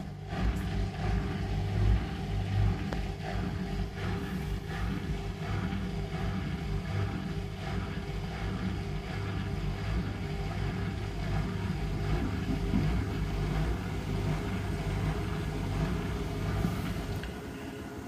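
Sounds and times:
washing machine spinning: 0.0 - 18.0.

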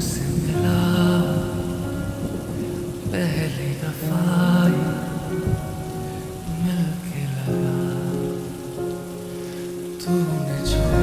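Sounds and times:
rain hissing on a surface: 0.0 - 11.0
slowed lofi song: 0.0 - 11.0.

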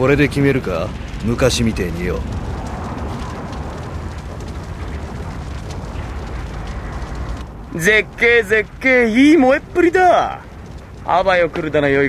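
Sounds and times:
large fire burning: 0.0 - 12.0.

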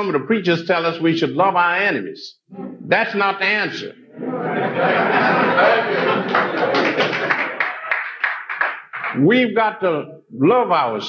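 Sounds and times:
audience applauding: 5.2 - 9.2.

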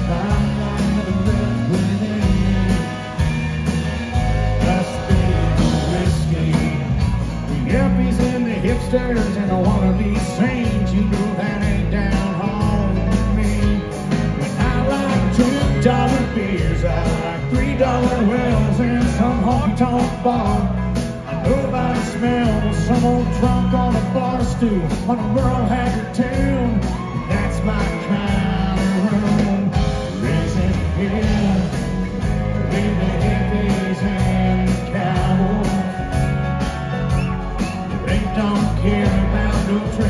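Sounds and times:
person singing: 0.0 - 3.8, 4.4 - 40.0
country band playing: 0.0 - 40.0.

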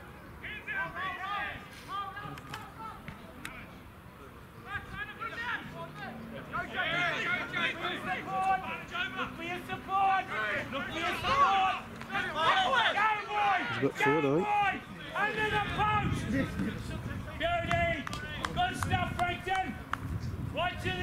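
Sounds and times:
rugby players shouting: 0.4 - 3.2, 4.6 - 19.8.

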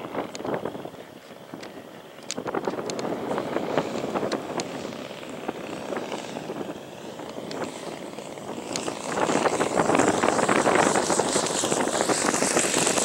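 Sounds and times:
model plane engine and propeller: 0.0 - 13.0
wind buffeting microphone: 0.0 - 13.0.

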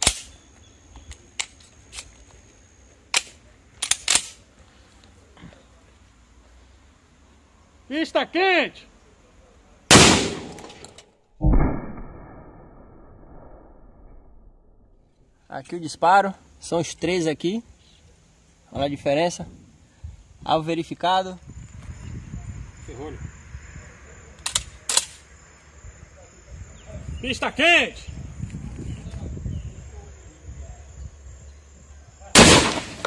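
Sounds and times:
loud shotgun shot: 9.9 - 12.6, 32.4 - 33.0
deeper dull boom: 11.4 - 14.9.

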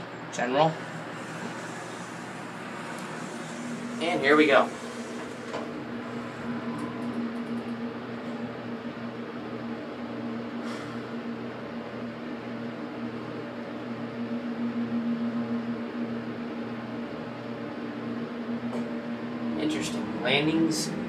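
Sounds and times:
elevator pump motor humming: 0.0 - 21.0.

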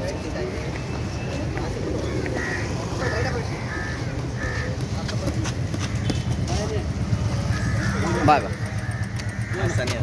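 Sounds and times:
voices: 0.0 - 10.0.

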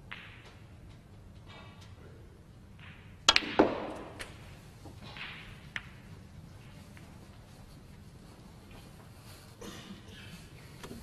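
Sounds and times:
snooker balls clicking: 2.7 - 7.1
cue tip striking ball: 2.9 - 4.3.

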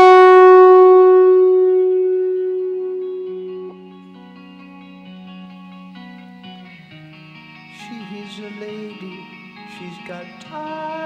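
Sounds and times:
fuzz electric piano note: 0.0 - 4.3.

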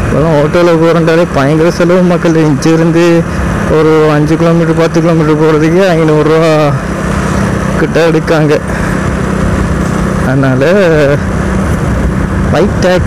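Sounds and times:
motorcycle engine running: 0.0 - 13.0
wind rushing over microphone: 0.0 - 13.0.

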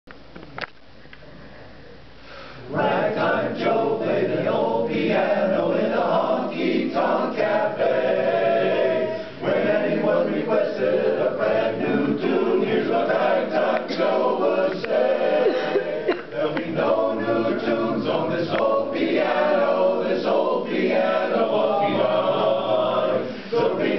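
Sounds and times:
male chorus singing in harmony: 2.7 - 23.9.

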